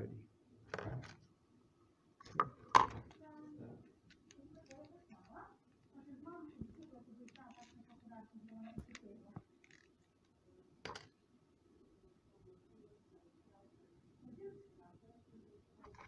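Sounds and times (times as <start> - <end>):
quiet low speech: 0.0 - 0.3, 3.0 - 16.0.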